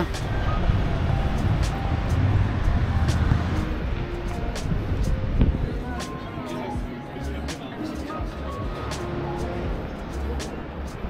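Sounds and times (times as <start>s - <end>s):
distant voices: 0.0s - 11.0s
street low rumble: 0.0s - 11.0s.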